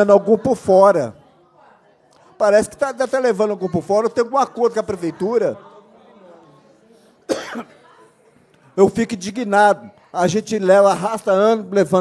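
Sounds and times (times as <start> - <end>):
person coughing: 7.3 - 7.8.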